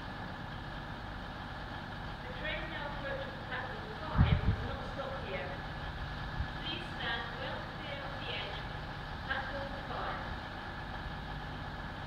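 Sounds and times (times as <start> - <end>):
distant diesel locomotive rumble: 0.0 - 12.0.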